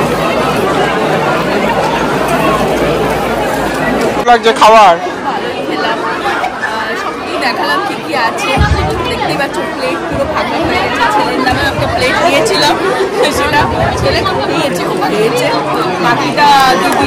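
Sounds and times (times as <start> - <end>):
babble of overlapping conversation: 0.0 - 17.0.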